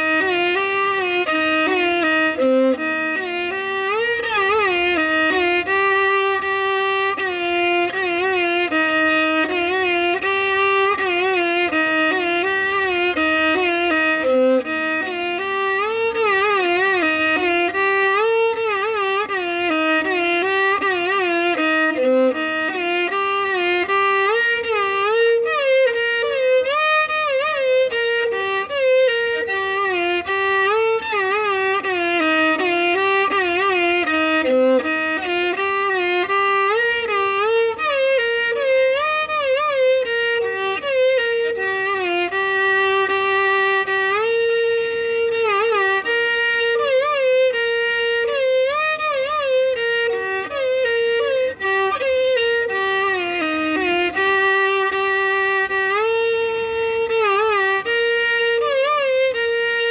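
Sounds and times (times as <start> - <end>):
solo violin melody: 0.0 - 59.9.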